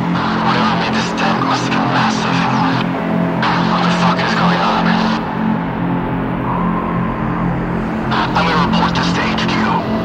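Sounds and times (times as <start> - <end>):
low electronic drone: 0.0 - 10.0.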